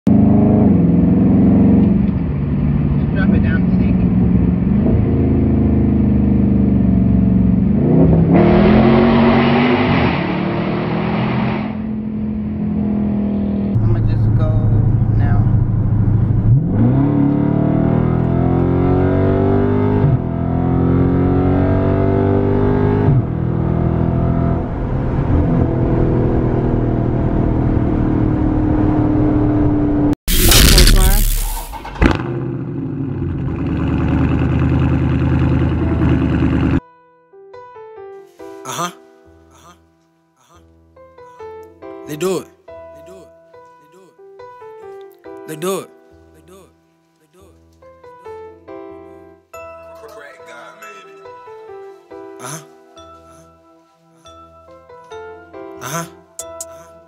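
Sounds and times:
car engine accelerating: 0:00.1 - 0:36.8
rushing road noise: 0:00.1 - 0:36.8.

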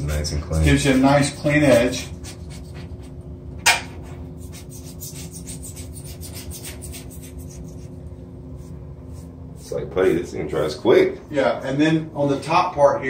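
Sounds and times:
razor blade scraping filler: 0:00.5 - 0:03.0, 0:04.4 - 0:08.0.

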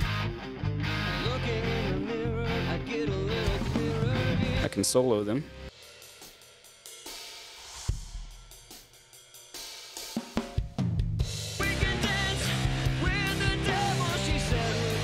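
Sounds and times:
drum track: 0:03.0 - 0:05.0, 0:05.7 - 0:15.0.

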